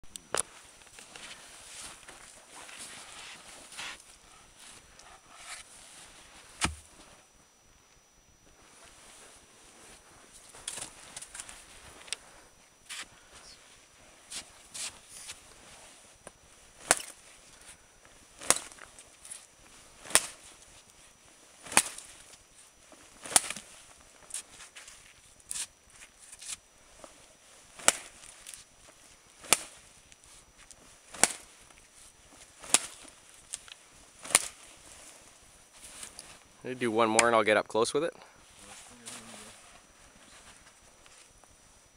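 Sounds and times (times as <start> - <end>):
knife chopping into wood: 6.6 - 6.8.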